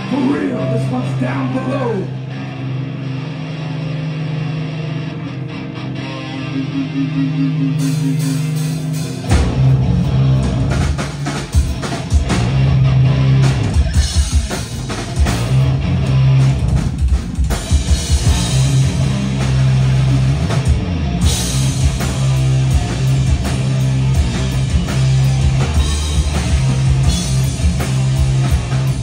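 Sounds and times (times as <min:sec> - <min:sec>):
heavy electric guitar and bass: 0:00.0 - 0:29.0
pounding drum kit: 0:07.7 - 0:29.0.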